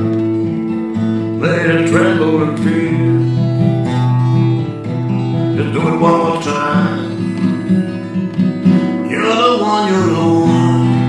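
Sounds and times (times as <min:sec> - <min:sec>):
guitar playing low notes: 0:00.0 - 0:11.0.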